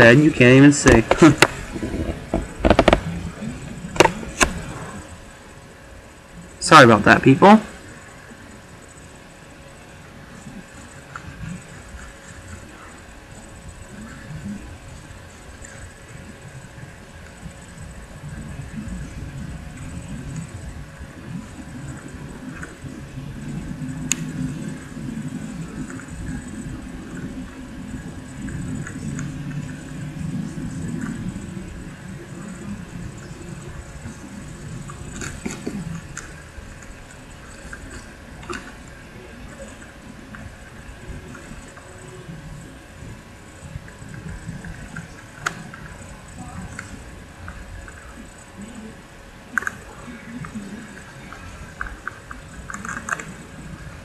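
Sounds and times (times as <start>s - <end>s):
faint steady hum: 0.0s - 54.0s.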